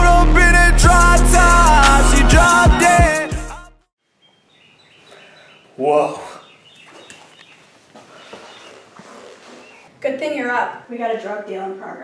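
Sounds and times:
small bird chirps: 0:04.2 - 0:09.9.

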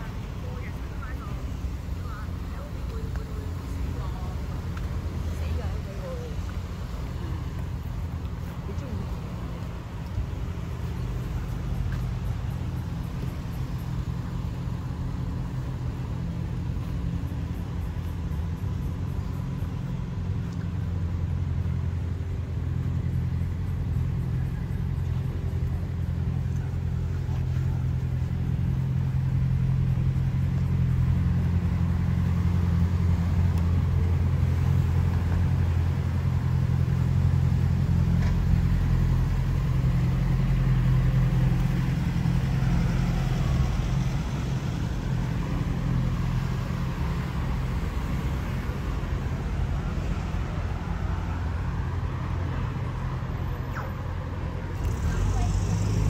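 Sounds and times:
cars driving past: 0:00.0 - 0:56.0.

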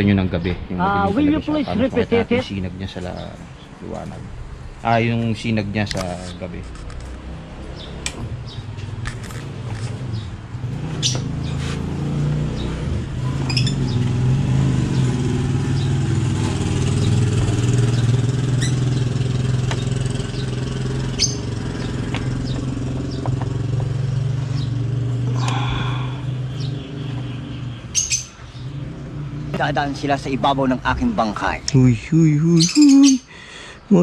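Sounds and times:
low engine hum: 0:00.0 - 0:32.7
faint bird chirps: 0:32.4 - 0:33.9.

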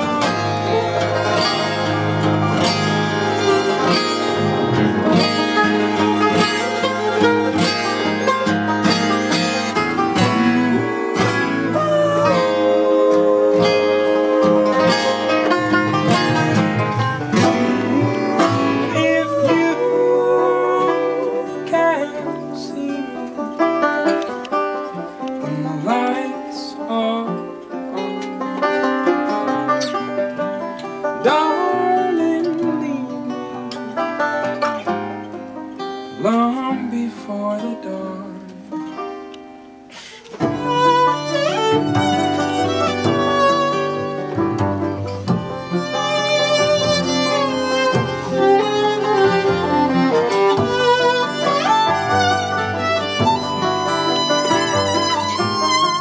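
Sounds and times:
sliding melody line: 0:00.0 - 0:25.0, 0:40.3 - 0:56.0
picked banjo: 0:00.0 - 0:56.0
strummed acoustic guitar: 0:00.0 - 0:56.0.

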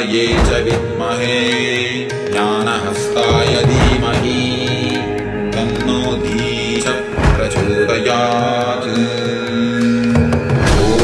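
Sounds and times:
person chanting: 0:00.0 - 0:11.0
light percussion strikes: 0:00.3 - 0:09.6
steady drone: 0:02.9 - 0:09.1.

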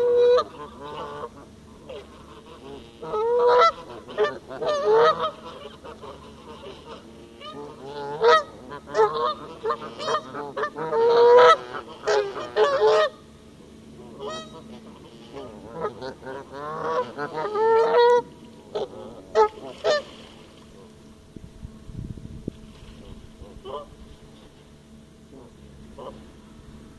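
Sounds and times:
geese honking: 0:00.0 - 0:20.9, 0:22.9 - 0:26.9.

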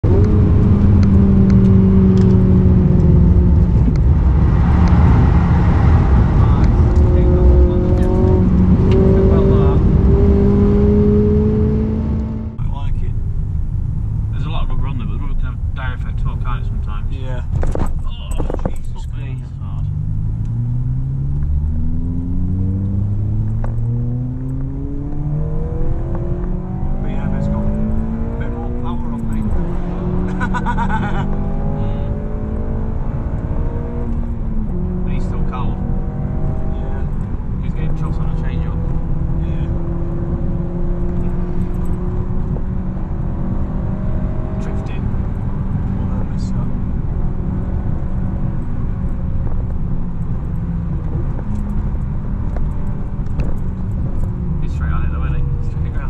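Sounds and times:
car engine accelerating hard: 0:00.0 - 0:56.0.

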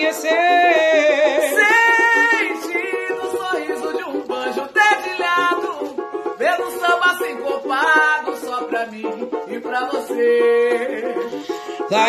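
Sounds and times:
woman singing: 0:00.0 - 0:12.0.

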